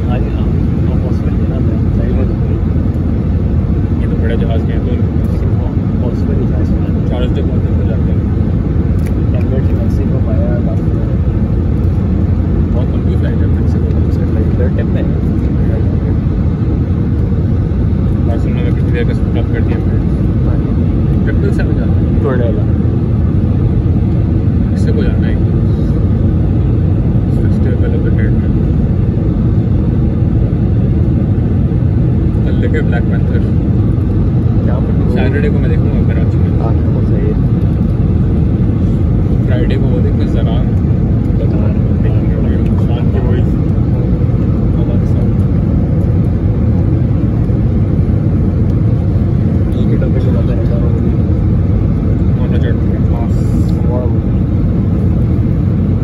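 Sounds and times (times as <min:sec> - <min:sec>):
airflow over airframe: 0:00.0 - 0:56.0
airplane cabin engine rumble: 0:00.0 - 0:56.0.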